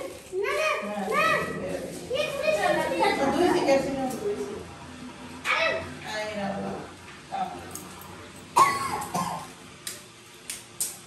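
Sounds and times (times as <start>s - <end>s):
person coughing: 8.6s - 9.5s.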